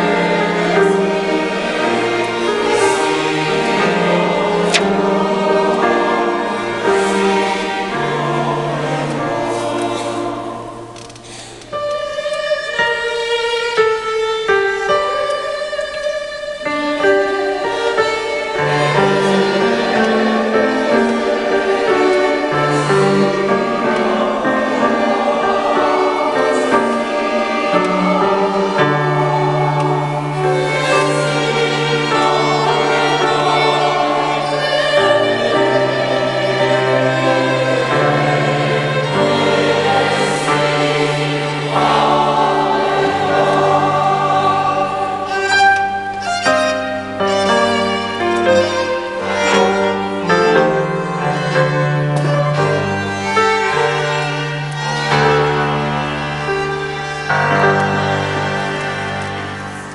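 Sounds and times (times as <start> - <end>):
choir singing chords: 0.0 - 59.9
keyboard accompaniment: 0.0 - 59.9.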